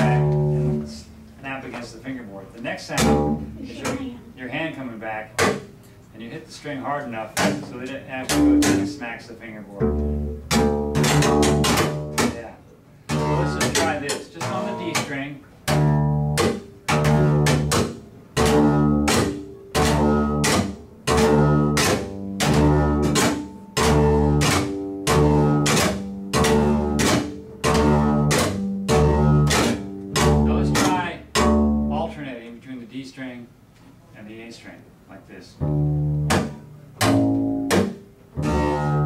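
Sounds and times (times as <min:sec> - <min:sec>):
upright bass slap notes: 0:00.0 - 0:01.3, 0:02.8 - 0:04.2, 0:07.2 - 0:32.2, 0:35.6 - 0:39.0
hand smacking bass strings: 0:00.0 - 0:01.9, 0:02.8 - 0:04.1, 0:05.4 - 0:05.8, 0:07.2 - 0:09.2, 0:09.8 - 0:32.1, 0:35.6 - 0:39.0.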